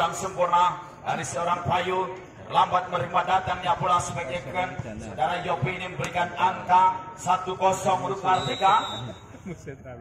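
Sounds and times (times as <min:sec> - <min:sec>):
referee's whistle: 0:08.2 - 0:09.3.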